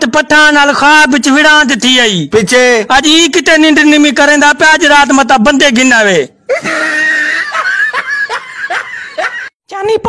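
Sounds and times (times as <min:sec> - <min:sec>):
man speaking: 0:00.0 - 0:06.4
man laughing: 0:06.4 - 0:09.6.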